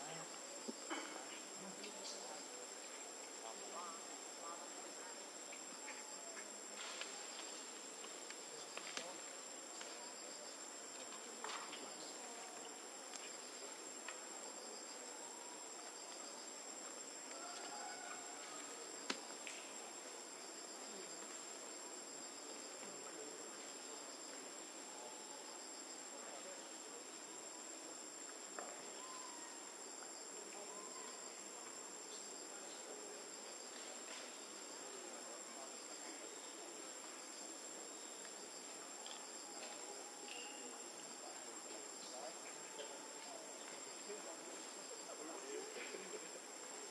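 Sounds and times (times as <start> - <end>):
high-pitched insect chorus: 0.0 - 46.9.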